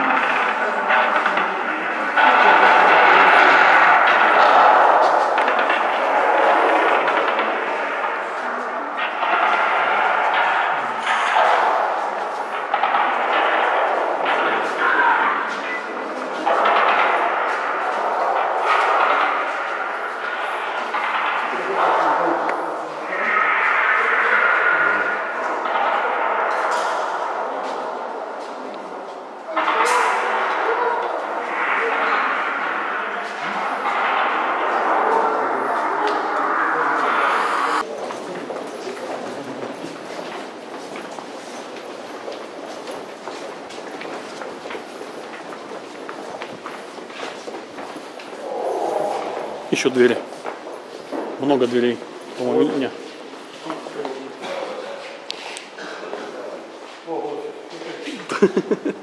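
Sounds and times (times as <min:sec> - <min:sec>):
people talking indistinctly: 0:00.0 - 0:40.6, 0:47.7 - 0:58.8
background murmur: 0:00.0 - 0:59.0.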